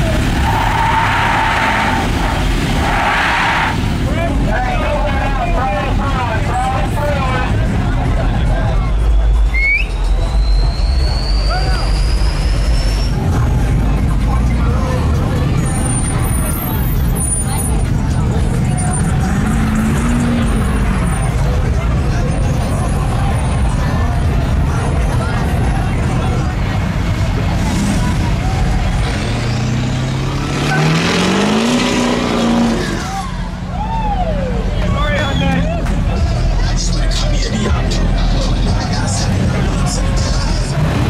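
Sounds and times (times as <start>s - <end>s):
crowd voices: 0.0s - 41.0s
truck engines driving past: 0.0s - 41.0s
engine revving: 17.0s - 21.6s, 27.1s - 33.3s, 39.2s - 41.0s.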